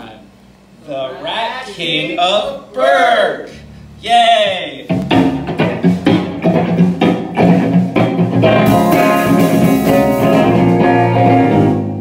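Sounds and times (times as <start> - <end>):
bass guitar: 3.4 - 12.0
drum kit: 4.4 - 12.0
electric guitar: 4.9 - 12.0.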